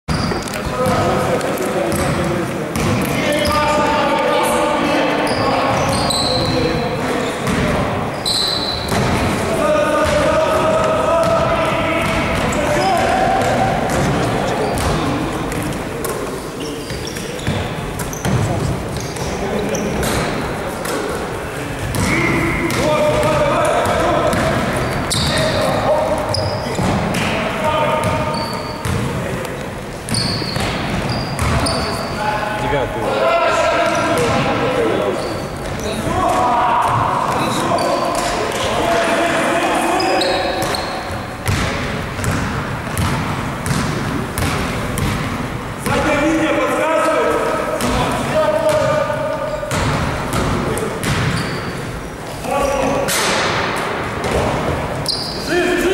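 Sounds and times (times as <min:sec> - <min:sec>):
players' voices and shouts: 0:00.6 - 0:44.8, 0:45.7 - 0:55.9
basketball bouncing on floor: 0:23.8 - 0:25.4, 0:28.8 - 0:29.1, 0:30.1 - 0:31.8, 0:41.4 - 0:45.3, 0:49.7 - 0:51.4.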